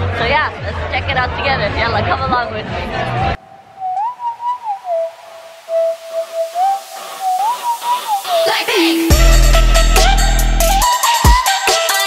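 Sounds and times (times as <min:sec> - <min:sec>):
whistled tune: 0:03.7 - 0:12.0.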